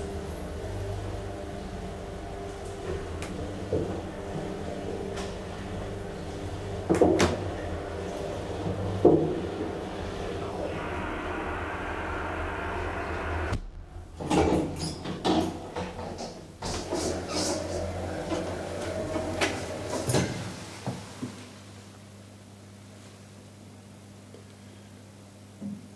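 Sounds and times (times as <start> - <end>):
hydraulic elevator humming: 0.0 - 15.2.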